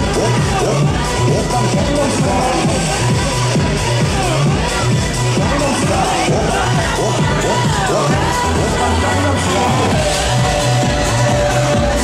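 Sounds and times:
children shouting and cheering: 0.0 - 12.0
loud dance music: 0.0 - 12.0.

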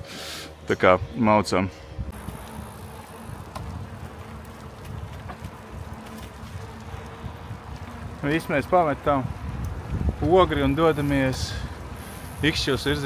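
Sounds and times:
wind buffeting microphone: 1.8 - 13.0.

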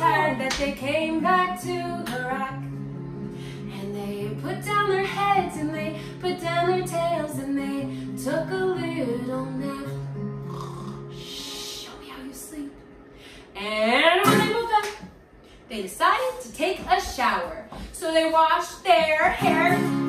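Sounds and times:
woman singing: 0.0 - 2.8, 3.5 - 10.2, 11.1 - 12.8, 13.5 - 15.0, 16.0 - 20.0
acoustic guitar strumming chords: 0.0 - 14.8, 19.2 - 20.0.

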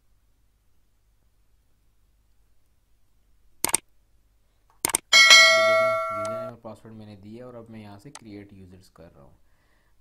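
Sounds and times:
bell chime sound effect: 5.2 - 6.5.

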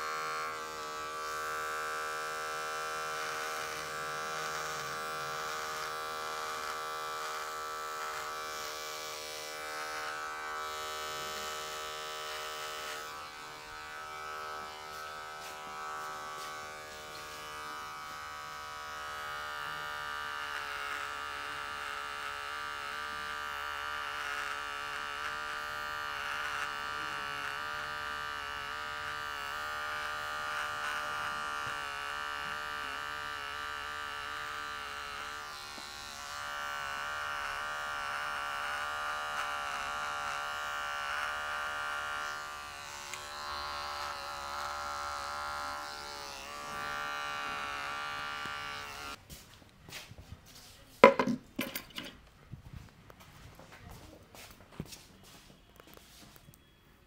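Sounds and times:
electric hair clipper buzzing: 0.0 - 49.2, 51.0 - 52.2.

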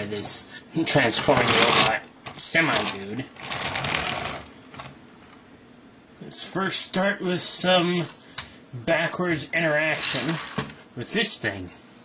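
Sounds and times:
toy wheels rattling on wood: 1.2 - 2.0.

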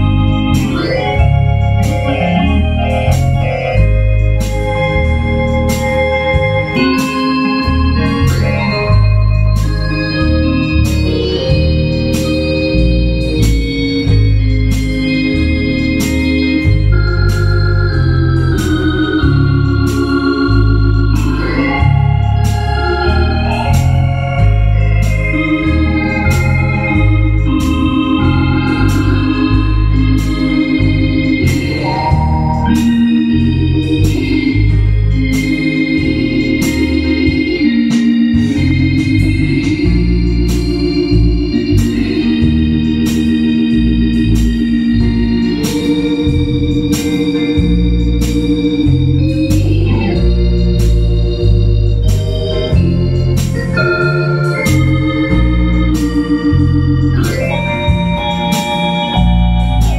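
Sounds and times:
organ playing gospel chords: 0.0 - 59.9
pulsing bass line: 0.0 - 59.9
steady ticking beat: 0.0 - 59.9.

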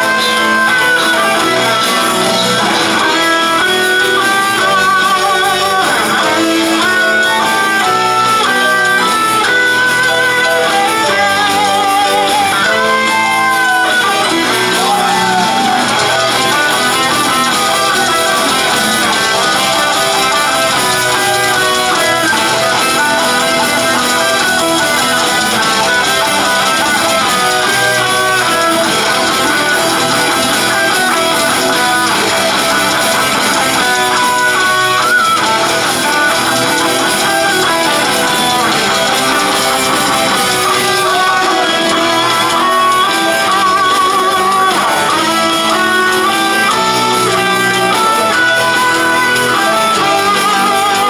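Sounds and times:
bass guitar: 0.0 - 51.0
electric guitar melody: 0.0 - 51.0.

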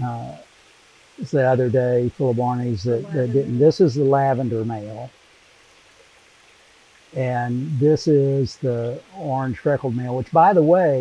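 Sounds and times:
faint running water hiss: 0.0 - 11.0.

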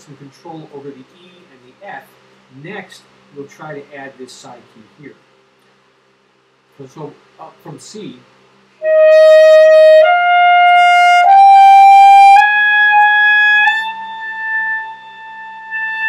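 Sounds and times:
alto saxophone held notes: 8.8 - 16.0.

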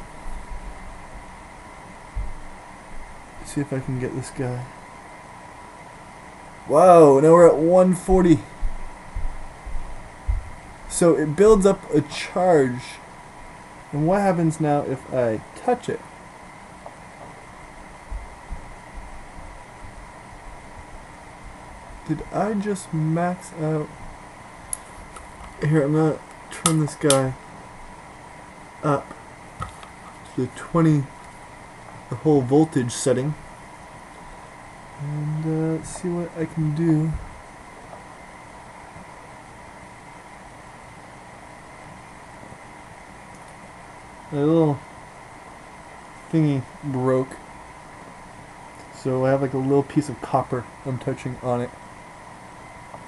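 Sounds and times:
room tone hiss and hum: 0.0 - 53.0
soft low thumps: 2.1 - 3.2, 8.6 - 10.7, 18.0 - 20.1.

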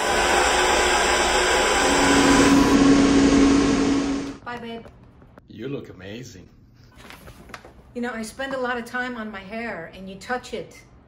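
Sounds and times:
electric motor blowing air: 0.0 - 4.4
steady hum: 0.0 - 4.4.

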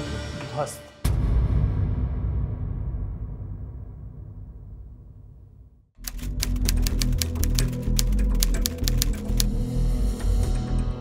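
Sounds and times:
typewriter key clicks: 6.0 - 9.5.

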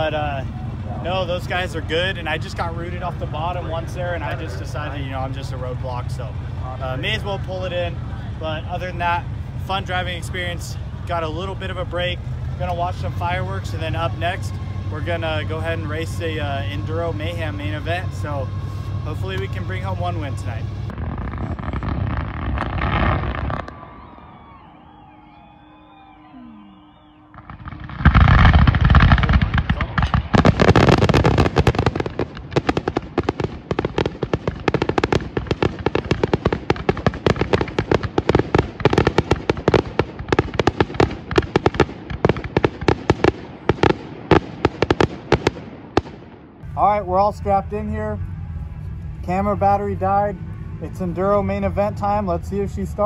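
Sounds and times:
rapid firework bangs and crackles: 0.0 - 24.7, 26.9 - 46.6
firework burst: 15.2 - 46.4.

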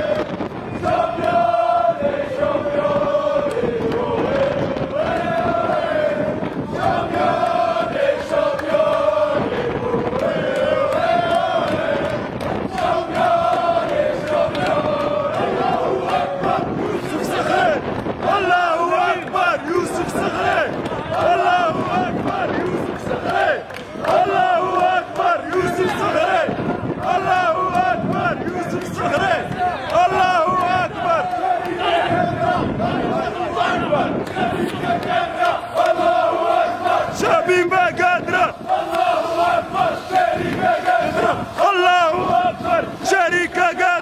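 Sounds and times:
group of men chanting: 0.0 - 44.0.

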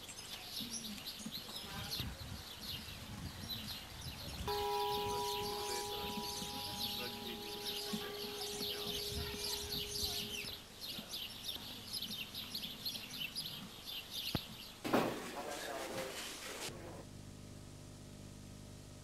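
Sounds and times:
small birds chirping: 0.0 - 14.8
steady hum-like tone: 4.5 - 10.6.

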